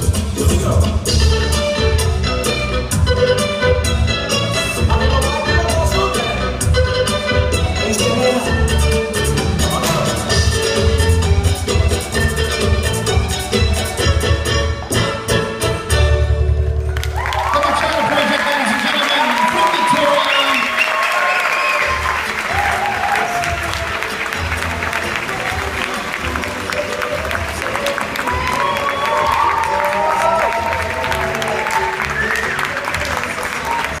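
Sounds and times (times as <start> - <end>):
bachata music: 0.0 - 18.4, 19.2 - 34.0
audience clapping and cheering: 16.6 - 34.0.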